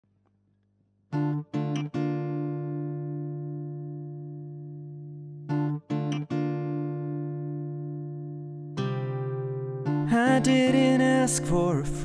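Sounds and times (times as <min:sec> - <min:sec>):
acoustic guitar chord ringing: 0:01.2 - 0:12.0.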